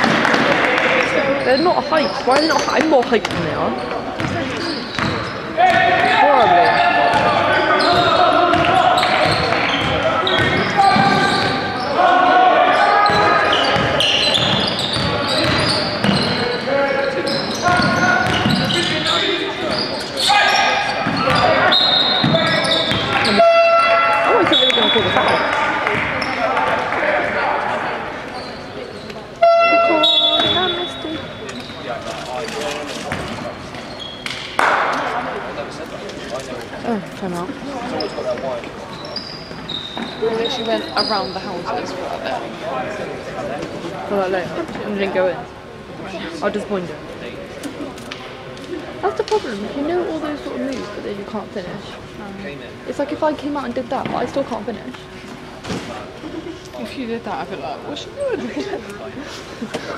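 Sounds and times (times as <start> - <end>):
players' voices echoing: 0.0 - 59.9
basketball bouncing on wooden court: 3.2 - 3.6, 4.2 - 5.8, 7.1 - 11.6, 13.1 - 16.3, 17.7 - 18.8.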